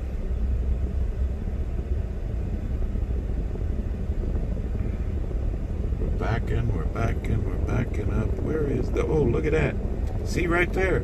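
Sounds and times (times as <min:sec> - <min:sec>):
pickup truck engine rumble: 0:00.0 - 0:11.0.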